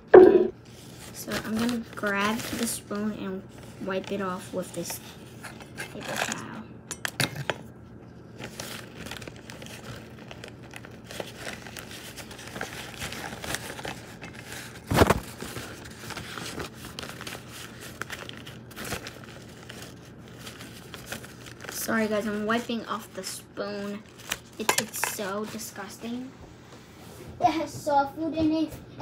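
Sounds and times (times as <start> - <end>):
paper towel rustling: 8.4 - 24.6.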